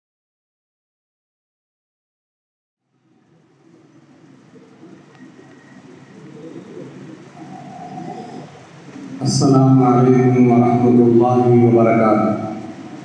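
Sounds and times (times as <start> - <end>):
low cooing calls: 2.9 - 13.0.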